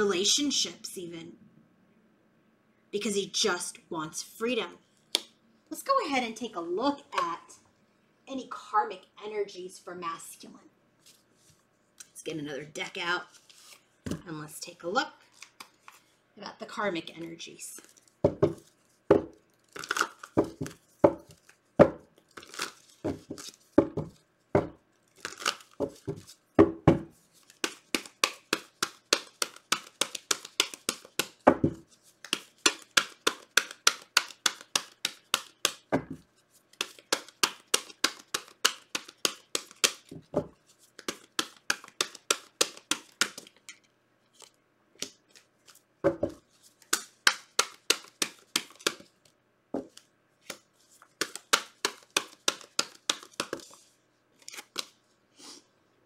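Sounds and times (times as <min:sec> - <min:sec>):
cards being shuffled: 0:13.3 - 0:14.2, 0:15.2 - 0:16.1, 0:17.1 - 0:24.2, 0:25.0 - 0:26.4, 0:27.0 - 0:49.2, 0:49.8 - 0:55.0.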